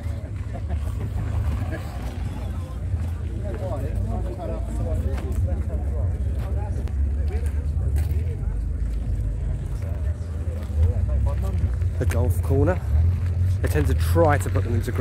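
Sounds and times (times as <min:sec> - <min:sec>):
people talking: 0:00.0 - 0:15.0
steady low rumble: 0:00.0 - 0:15.0.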